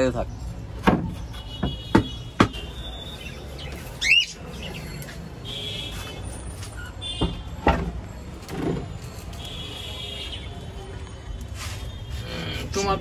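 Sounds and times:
wood knocking on wood: 0.8s - 2.6s.

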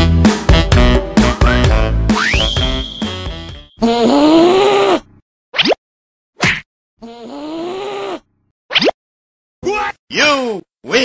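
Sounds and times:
cartoon angry groan: 3.8s - 5.1s.

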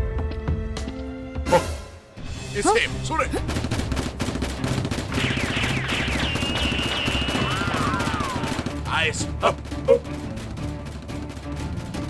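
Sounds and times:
rapid automatic gunfire: 3.3s - 9.7s
quick falling whistles: 5.4s - 8.4s.

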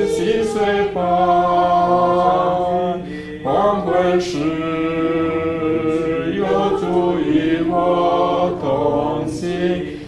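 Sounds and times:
voices singing a slow hymn: 0.0s - 10.0s
breath between phrases: 3.0s - 3.4s.

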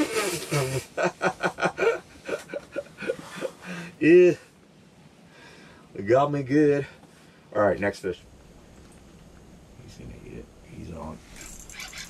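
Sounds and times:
man chuckling softly: 0.0s - 3.9s.

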